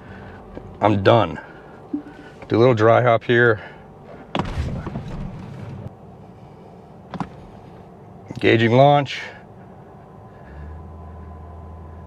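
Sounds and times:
faint steady hum: 0:00.0 - 0:12.0
low rumble of car cabin: 0:00.0 - 0:12.0.

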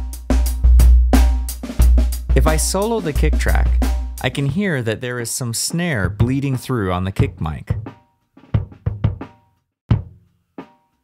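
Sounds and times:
faint snare drum: 0:00.0 - 0:04.7
kick drum hits: 0:08.6 - 0:09.3.

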